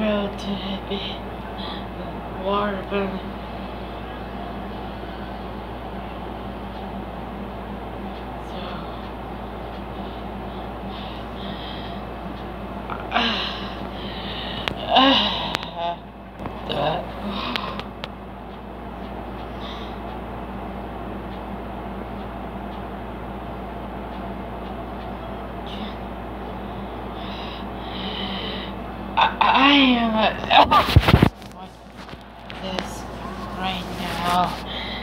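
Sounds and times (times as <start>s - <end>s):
low background hum: 0.0s - 35.0s
person breathing: 10.9s - 12.0s, 13.1s - 15.6s, 19.6s - 20.0s, 27.1s - 28.8s, 34.6s - 35.0s.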